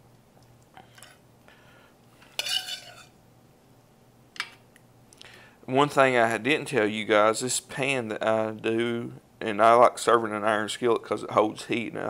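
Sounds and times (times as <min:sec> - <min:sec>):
metal spoon clinking on pans: 0:02.3 - 0:03.1.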